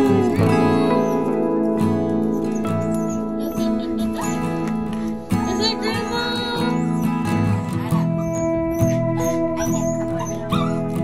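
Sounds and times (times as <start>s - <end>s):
background music held notes: 0.0s - 11.0s
small dog whimpering: 0.0s - 11.0s.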